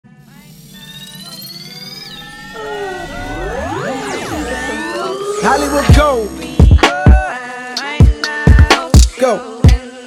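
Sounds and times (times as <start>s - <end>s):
electronic synth music: 0.3s - 9.1s
rising synth sweeps: 0.4s - 7.4s.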